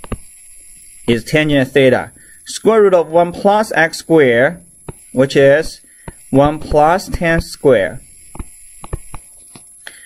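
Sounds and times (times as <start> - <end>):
stylus tapping on tablet screen: 6.0 - 7.2, 8.3 - 9.3.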